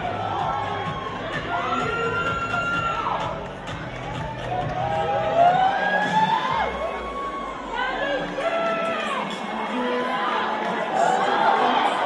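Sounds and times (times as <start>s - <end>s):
audience cheering: 0.0s - 3.5s, 4.2s - 9.4s.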